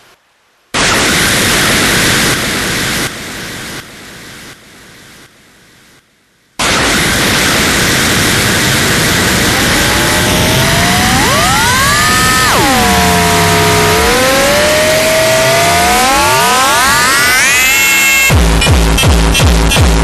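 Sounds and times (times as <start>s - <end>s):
hardcore electronic dance track: 8.4s - 20.0s
synth tones sliding in pitch: 9.0s - 18.4s.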